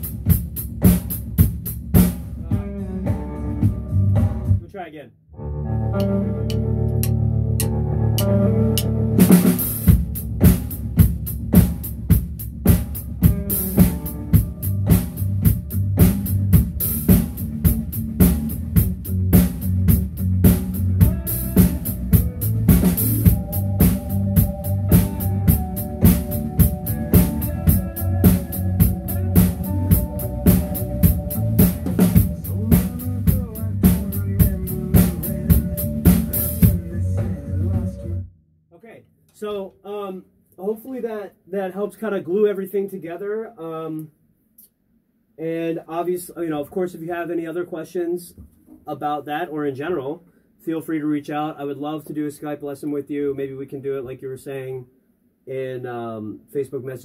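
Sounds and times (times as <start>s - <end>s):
drum kit playing a beat: 0.0s - 4.8s, 6.0s - 38.2s
recorded rock song: 0.0s - 4.8s, 5.4s - 38.2s.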